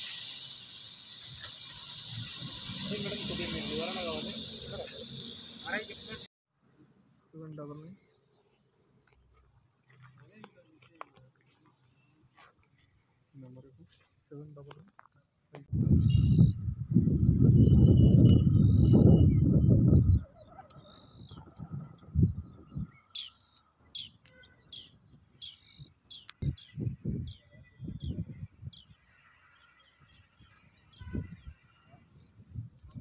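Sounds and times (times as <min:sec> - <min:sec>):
small birds chirping: 0:16.0 - 0:32.4.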